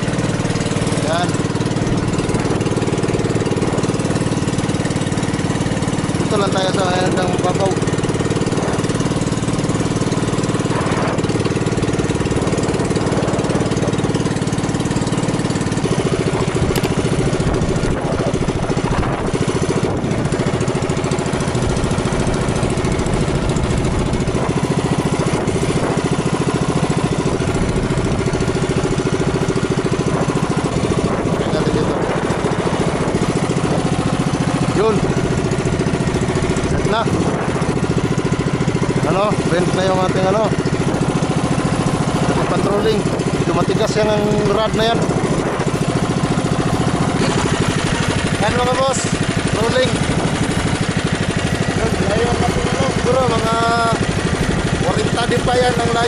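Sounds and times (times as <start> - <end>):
small boat engine running: 0.0 - 56.0.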